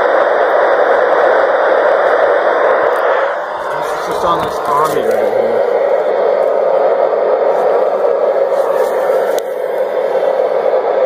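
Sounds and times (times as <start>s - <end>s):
radio static hiss: 0.0s - 11.0s.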